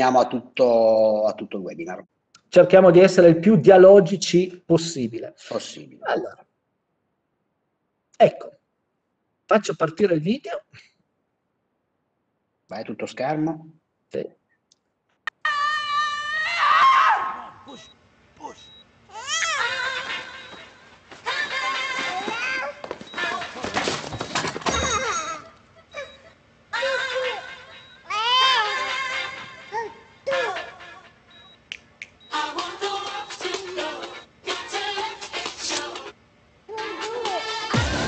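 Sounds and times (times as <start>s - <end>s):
woman screaming: 15.3s - 19.8s
loud commercial music: 37.7s - 38.0s.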